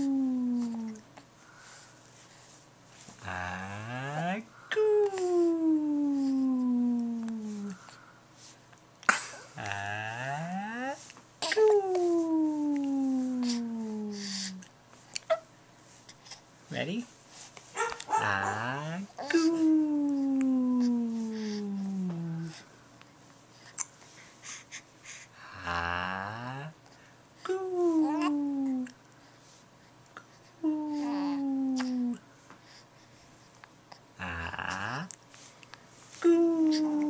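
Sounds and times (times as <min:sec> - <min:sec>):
soft breath puffs: 0:00.6 - 0:03.2, 0:17.1 - 0:18.2, 0:19.3 - 0:25.6, 0:35.2 - 0:37.0
voice holding descending vowel: 0:04.9 - 0:07.8, 0:11.6 - 0:14.6, 0:18.2 - 0:22.6
baby vocalizing: 0:11.4 - 0:15.5, 0:17.8 - 0:22.6, 0:27.8 - 0:28.9, 0:30.7 - 0:32.2, 0:36.4 - 0:37.0.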